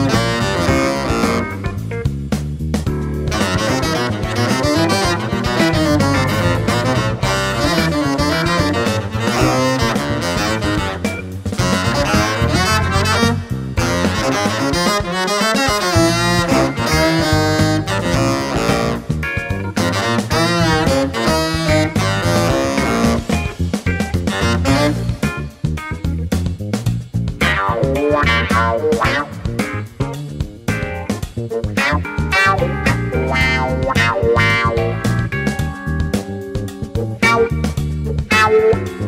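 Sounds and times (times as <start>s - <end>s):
tenor saxophone with octave effect: 0.0s - 1.9s, 3.3s - 23.6s, 24.2s - 25.5s, 31.8s - 35.2s, 38.3s - 39.0s
funk backing track: 0.0s - 39.0s.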